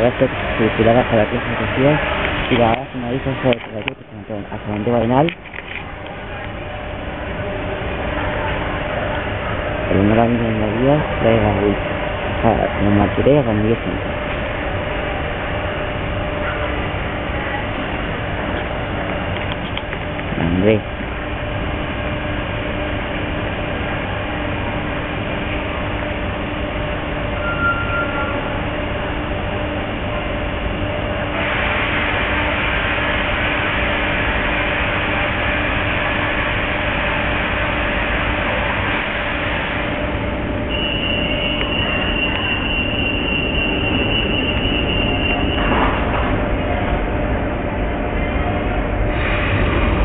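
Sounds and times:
train running with low hum: 0.0s - 50.0s
high steady squeal: 20.4s - 50.0s
hiss: 31.3s - 40.0s, 49.1s - 50.0s.

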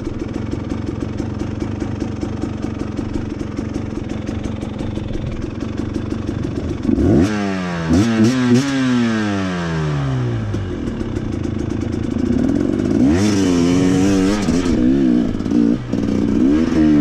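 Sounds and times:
dirt bike engine revving: 6.5s - 17.0s.

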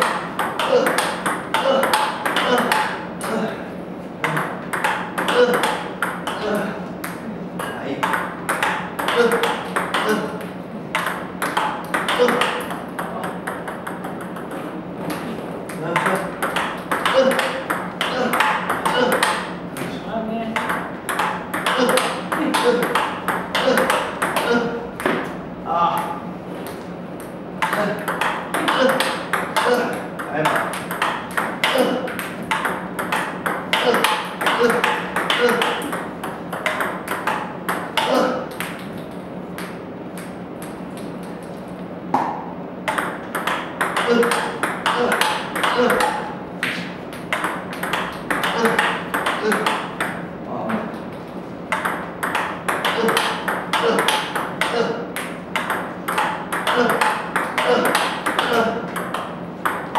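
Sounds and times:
table tennis ball clicks: 4.2s - 6.4s, 7.0s - 19.9s, 20.6s - 25.3s, 26.6s - 41.5s, 42.1s - 50.2s, 51.7s - 59.9s.

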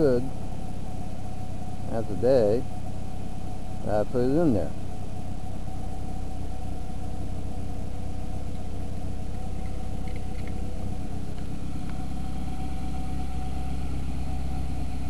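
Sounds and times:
car engine idling: 0.0s - 15.0s.

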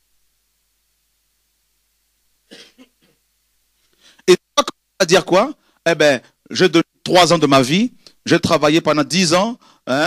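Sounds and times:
person coughing: 2.5s - 3.2s.

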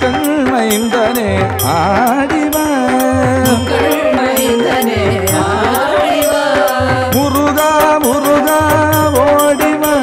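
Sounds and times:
devotional music melody: 0.0s - 10.0s
percussion beat: 0.0s - 10.0s.

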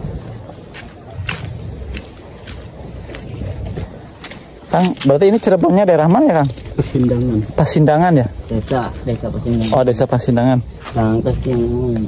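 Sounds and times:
footsteps on brick path: 0.0s - 12.0s
wind on microphone: 0.0s - 12.0s.

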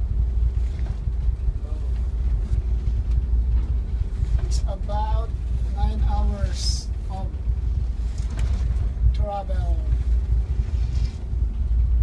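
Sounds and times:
boat engine droning: 0.0s - 12.0s
faint steady hum: 0.0s - 12.0s.

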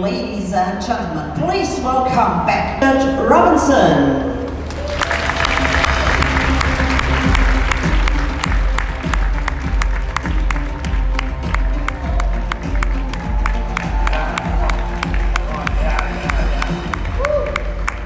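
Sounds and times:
audience applause: 4.5s - 18.0s
walk-on music with heavy bass: 5.3s - 18.0s.

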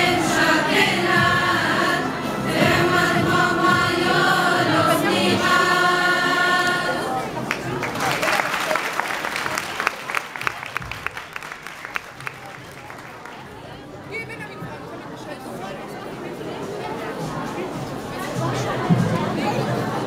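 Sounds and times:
girls' choir singing: 0.0s - 7.6s
audience applause: 7.4s - 13.8s.

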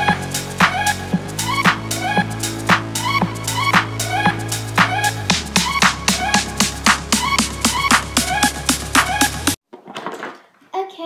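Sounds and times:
electronic music with quick beat: 0.0s - 9.6s.

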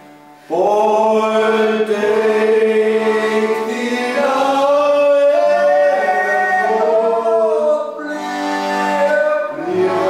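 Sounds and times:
accordion: 0.0s - 10.0s
men singing held note: 0.5s - 10.0s.

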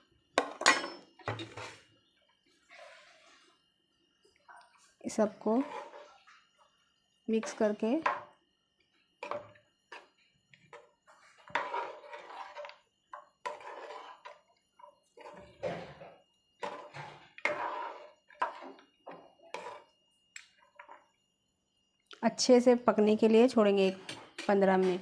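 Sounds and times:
spoon scraping a cooking pot: 5.4s - 6.4s, 10.7s - 21.0s.

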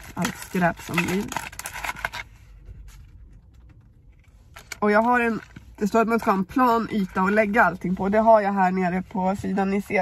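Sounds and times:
packaging rustling and clicking: 0.0s - 2.3s.

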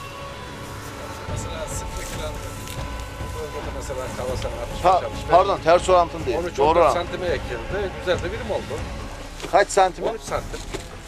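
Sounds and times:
men talking quietly: 0.8s - 11.0s.

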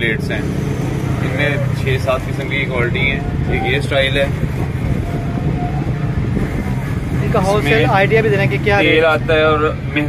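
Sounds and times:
outdoor market noise: 0.0s - 10.0s
street traffic rumble: 0.0s - 10.0s
man talking: 7.4s - 8.0s.

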